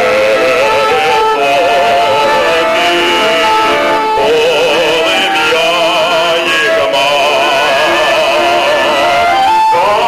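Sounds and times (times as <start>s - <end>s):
man singing folk song: 0.0s - 10.0s.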